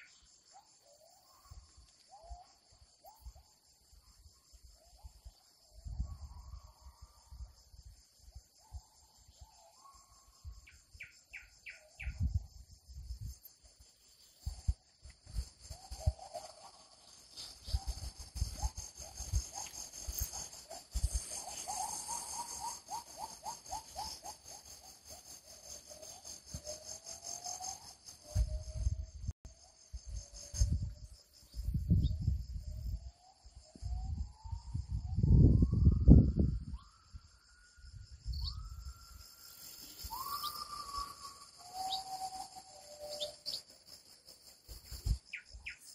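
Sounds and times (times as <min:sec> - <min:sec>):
high insect drone: 0:00.0 - 0:45.9.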